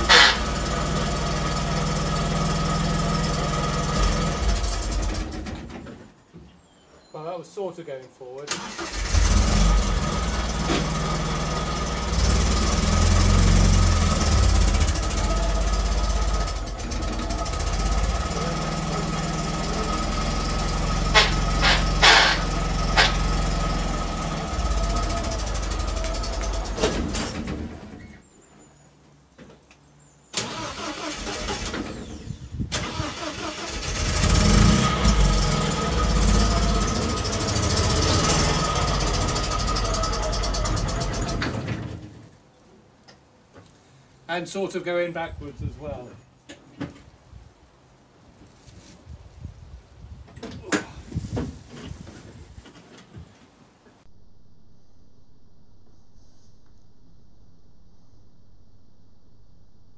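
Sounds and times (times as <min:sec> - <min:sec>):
car engine running: 0:00.0 - 0:05.4, 0:09.1 - 0:28.0.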